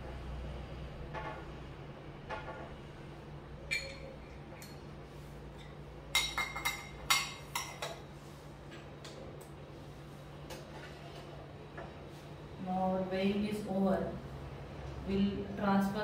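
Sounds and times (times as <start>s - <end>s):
glass clinks and taps: 3.7s - 4.1s.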